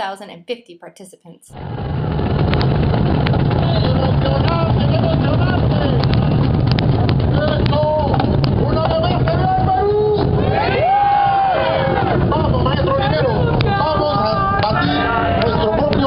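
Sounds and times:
many cajones drumming: 0:02.3 - 0:16.0
crowd shouting: 0:09.2 - 0:16.0.

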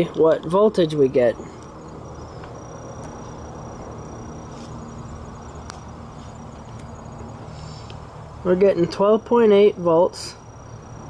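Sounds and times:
high-pitched insect trill: 0:00.0 - 0:11.0.

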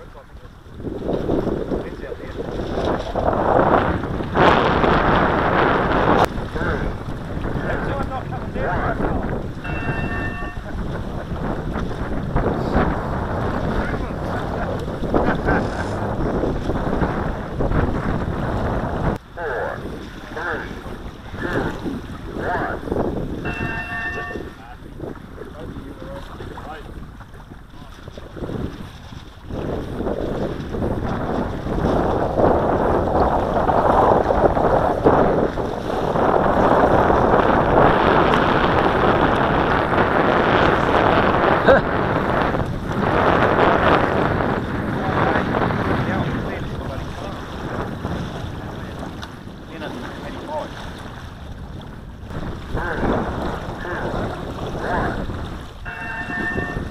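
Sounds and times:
wind buffeting microphone: 0:00.0 - 0:56.9
short pitched tone: 0:09.6 - 0:10.8, 0:23.4 - 0:24.6, 0:55.9 - 0:56.9.

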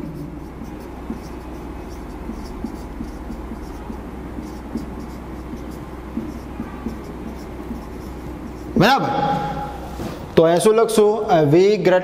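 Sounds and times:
marker pen writing on whiteboard: 0:00.0 - 0:10.0
steady low hum: 0:00.0 - 0:10.5.

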